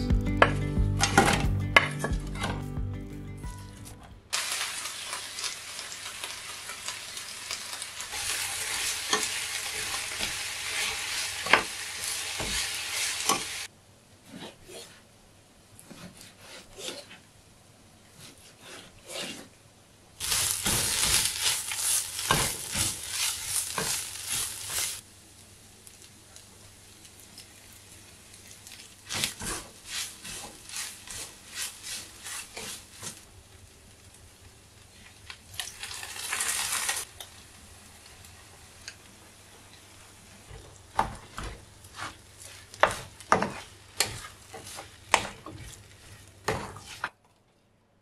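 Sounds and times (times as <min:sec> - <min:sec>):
onions sizzling in a frying pan: 0:04.3 - 0:13.7, 0:20.2 - 0:47.0.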